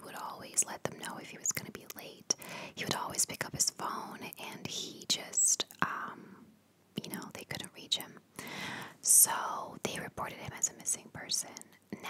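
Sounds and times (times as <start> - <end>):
woman whispering: 0.0 - 6.4, 7.0 - 8.2, 9.0 - 12.0.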